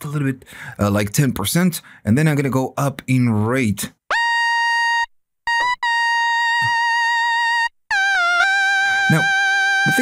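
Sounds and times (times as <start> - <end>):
synthesizer lead notes sliding: 5.5 - 10.0.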